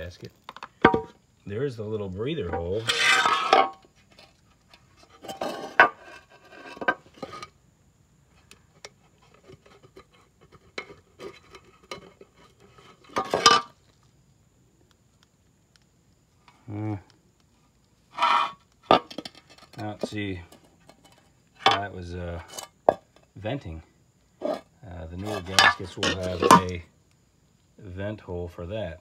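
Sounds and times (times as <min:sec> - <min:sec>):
gasket rubbing: 0:02.5 - 0:04.2, 0:18.1 - 0:22.7, 0:24.4 - 0:26.8
metal cover knocking and clinking: 0:25.5 - 0:26.8.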